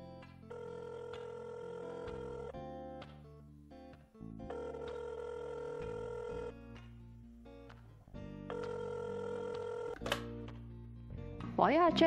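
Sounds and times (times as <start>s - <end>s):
soft background music: 0.0s - 12.0s
telephone ringback tone: 0.5s - 2.6s, 4.5s - 6.6s, 8.5s - 10.0s.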